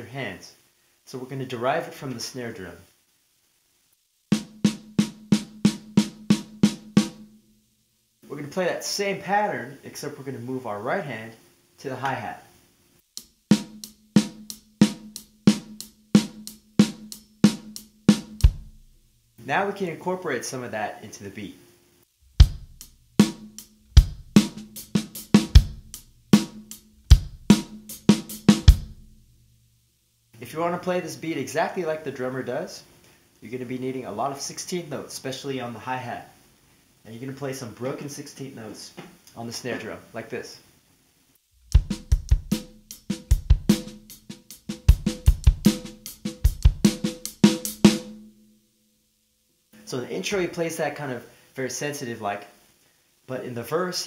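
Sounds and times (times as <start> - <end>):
drum kit playing rock beat: 4.3 - 7.4, 13.1 - 19.0, 22.2 - 29.3, 41.6 - 48.3
heavy kick drum strokes: 13.2 - 19.1, 22.2 - 29.4, 41.6 - 48.3.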